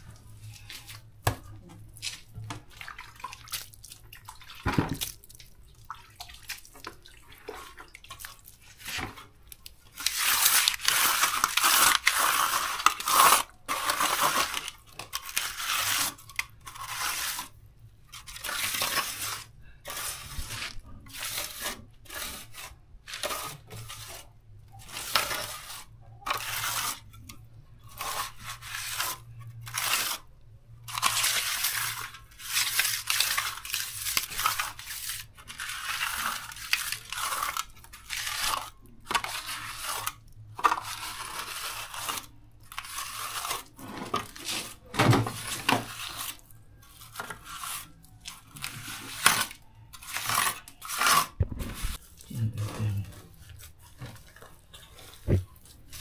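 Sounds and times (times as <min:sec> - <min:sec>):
crunching scraping of dry material: 0:30.9 - 0:56.0.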